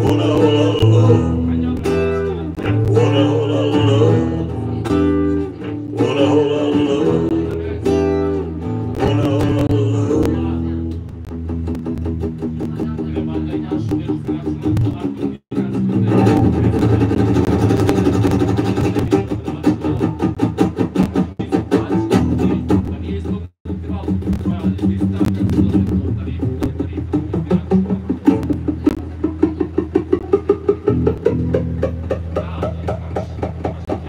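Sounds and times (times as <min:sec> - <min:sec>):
acoustic guitar playing: 0:00.0 - 0:33.9
second guitar playing: 0:00.0 - 0:34.0.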